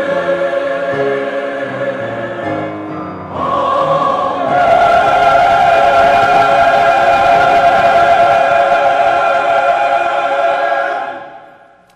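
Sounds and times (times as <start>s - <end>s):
church choir holding a chord: 0.0s - 11.9s.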